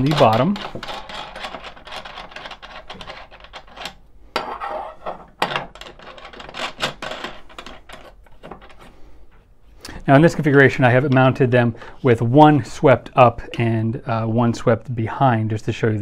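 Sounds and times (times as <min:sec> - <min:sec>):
metal nuts and washers clinking: 0:00.0 - 0:08.8.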